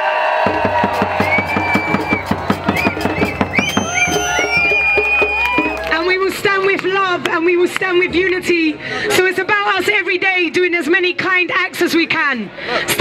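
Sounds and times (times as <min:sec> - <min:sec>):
crowd whooping and cheering: 0:00.0 - 0:07.2
hand drum beating fast: 0:00.4 - 0:08.5.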